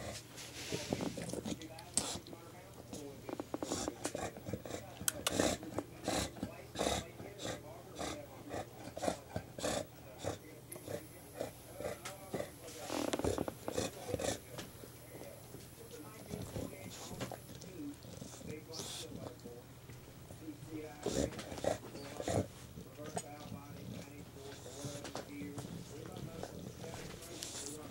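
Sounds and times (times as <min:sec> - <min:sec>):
dog chewing plush toy: 0:00.0 - 0:27.9.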